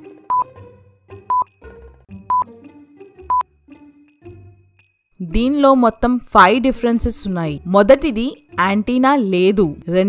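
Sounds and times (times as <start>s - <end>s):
quiet background music: 5.2s - 10.0s.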